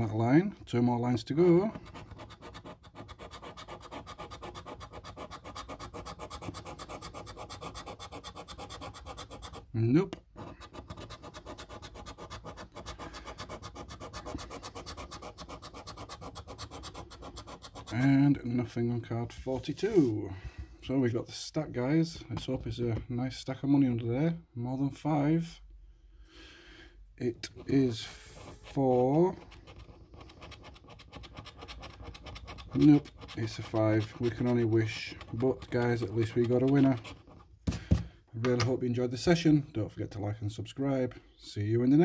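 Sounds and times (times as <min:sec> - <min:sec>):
scratch card being scratched: 0:01.7 - 0:18.1, 0:27.4 - 0:38.0.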